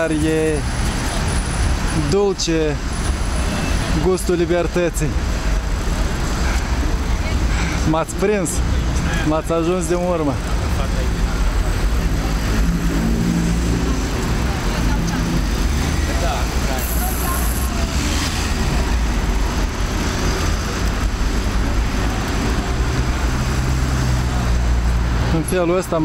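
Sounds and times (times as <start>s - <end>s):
street traffic rumble: 0.0s - 26.0s
indistinct voices: 3.4s - 24.9s.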